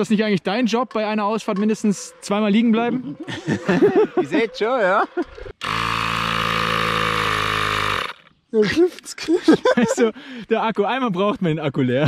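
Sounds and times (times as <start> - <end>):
mini tyre pump running: 5.4 - 8.3.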